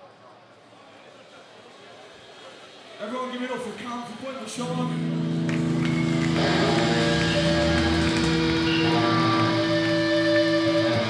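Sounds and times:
electric guitars through amplifiers: 4.6s - 11.0s.

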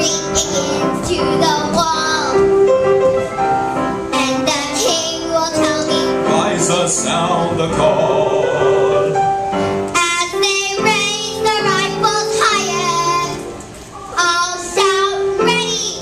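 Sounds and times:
girl singing: 0.0s - 2.5s, 4.1s - 6.3s, 9.9s - 13.4s, 14.0s - 16.0s
instrumental accompaniment: 0.0s - 16.0s.

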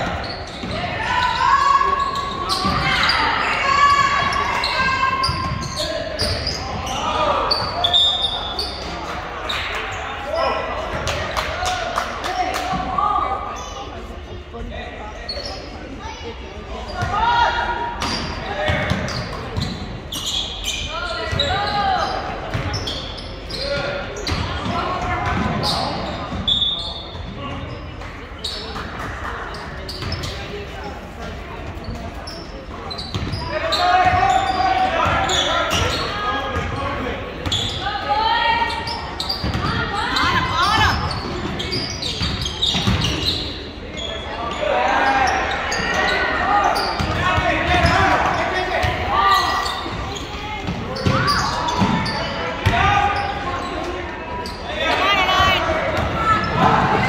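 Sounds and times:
sneakers squeaking: 0.0s - 11.8s, 12.6s - 57.0s.

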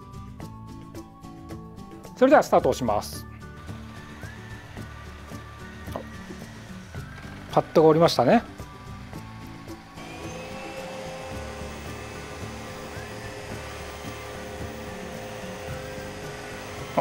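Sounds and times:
background music: 0.0s - 17.0s
robot vacuum motor whirring: 3.6s - 17.0s.

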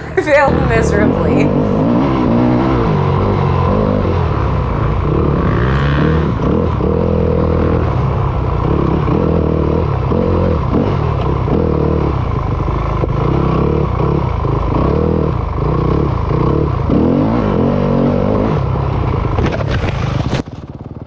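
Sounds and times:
motorcycle engine revving: 0.0s - 21.0s.

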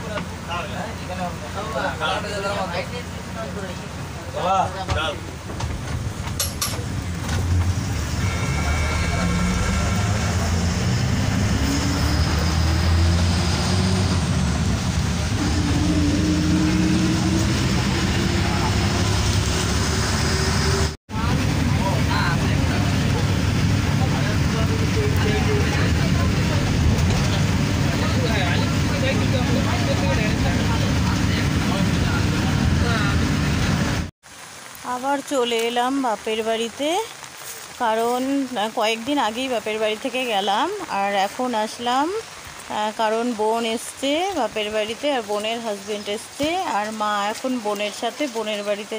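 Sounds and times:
vehicle engine and road rumble: 0.0s - 34.8s.

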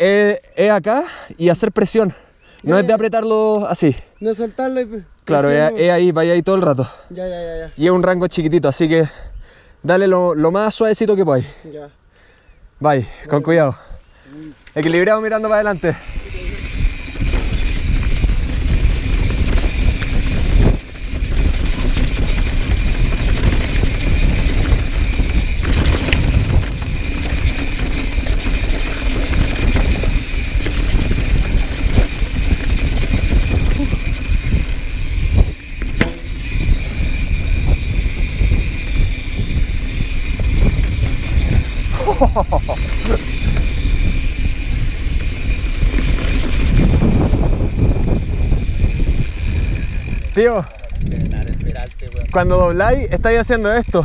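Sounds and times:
bike tyres and frame rattling: 14.7s - 54.0s
wind on microphone: 15.5s - 54.0s.

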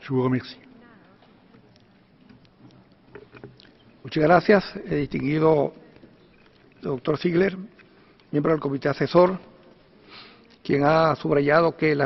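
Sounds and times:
faint clicks and rustles: 0.0s - 12.0s.

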